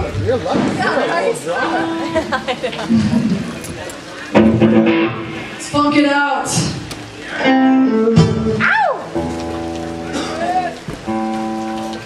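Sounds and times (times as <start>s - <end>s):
live band holding chords: 0.0s - 12.0s.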